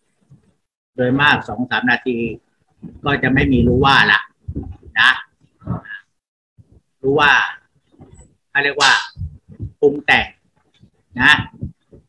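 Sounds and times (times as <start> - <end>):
man speaking over video call: 1.0 - 6.2, 7.0 - 7.7, 8.5 - 10.4, 11.1 - 11.8.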